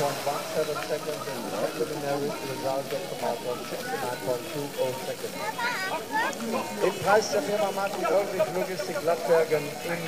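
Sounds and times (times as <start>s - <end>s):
fountain water hiss: 0.0s - 10.0s
announcer talking: 6.8s - 10.0s.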